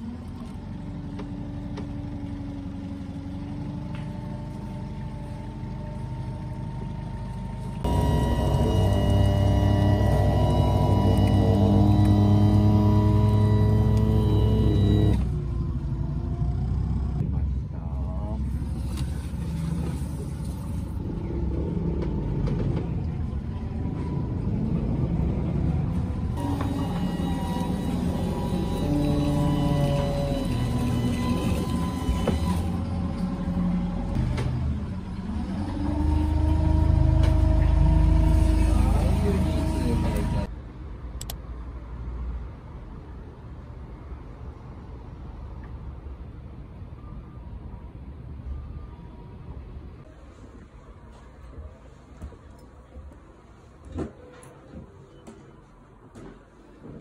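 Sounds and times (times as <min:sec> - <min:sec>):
boat motor rumbling: 0:00.0 - 0:40.5
melody of long held notes: 0:07.8 - 0:15.2.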